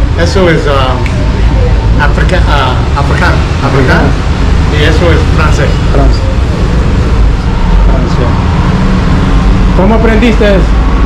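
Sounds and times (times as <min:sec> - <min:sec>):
faint voices: 0:00.0 - 0:08.5.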